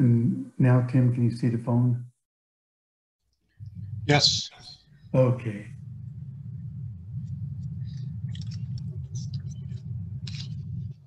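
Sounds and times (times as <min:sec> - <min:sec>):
faint clicks and rustles: 0:03.3 - 0:11.0
steady low rumble: 0:03.5 - 0:11.0.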